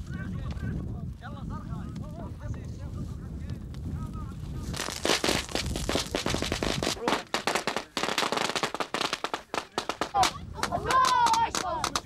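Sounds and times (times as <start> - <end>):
automatic gunfire: 4.8 - 10.4.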